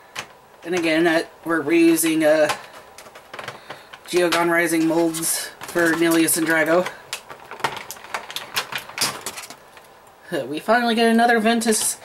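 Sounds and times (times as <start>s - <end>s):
plastic toy pieces clicking: 5.6s - 9.6s.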